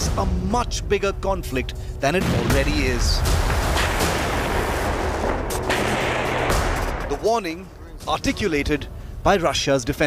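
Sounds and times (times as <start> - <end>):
rumble of gunfire: 2.2 - 7.4
sharp gunshots: 2.2 - 8.5.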